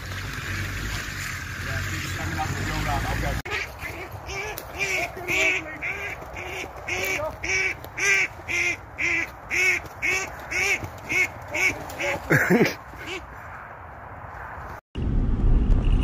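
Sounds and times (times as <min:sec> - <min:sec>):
bird calling: 0:00.0 - 0:13.4.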